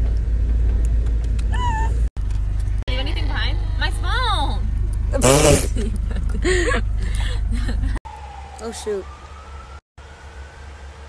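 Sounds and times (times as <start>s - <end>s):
low rumble of car interior: 0.0s - 8.0s
young woman squealing: 1.5s - 2.1s.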